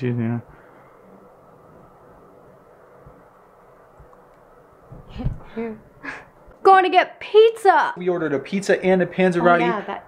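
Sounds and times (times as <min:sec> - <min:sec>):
low steady hum: 0:00.0 - 0:10.0
soft low thumps: 0:04.9 - 0:05.7.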